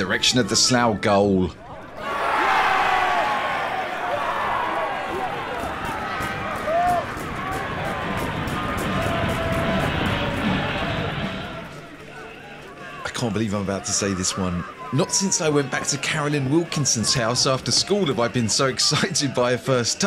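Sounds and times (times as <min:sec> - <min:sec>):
football crowd cheering: 0:01.5 - 0:20.0.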